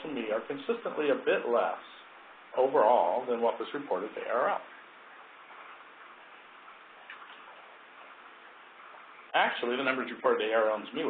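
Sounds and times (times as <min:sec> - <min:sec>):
low steady hiss: 0:00.0 - 0:11.0.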